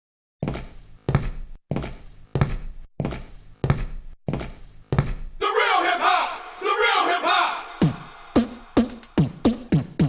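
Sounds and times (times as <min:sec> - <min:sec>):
dance club drum beat: 0:07.8 - 0:10.0.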